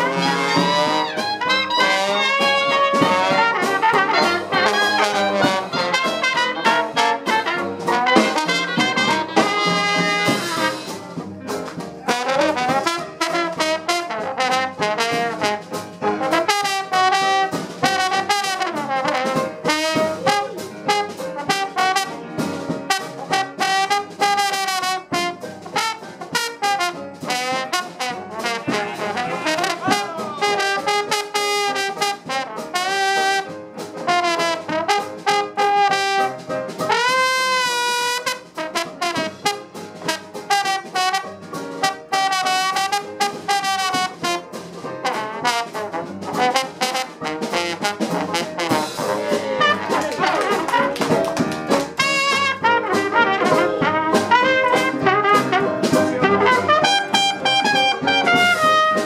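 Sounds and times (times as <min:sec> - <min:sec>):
trombone sliding between notes: 0:00.0 - 0:11.2, 0:12.0 - 0:22.2, 0:22.9 - 0:51.1, 0:52.0 - 0:59.0
traditional jazz band: 0:00.0 - 0:59.0.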